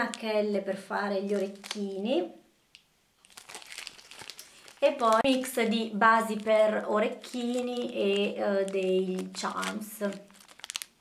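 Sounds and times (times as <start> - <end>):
plastic bag crinkling: 0.0 - 0.4, 1.2 - 2.0, 3.2 - 11.0.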